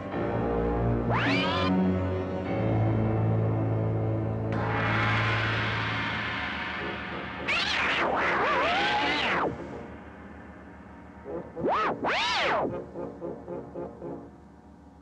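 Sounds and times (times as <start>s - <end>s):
dark orchestral film music: 0.0s - 15.0s.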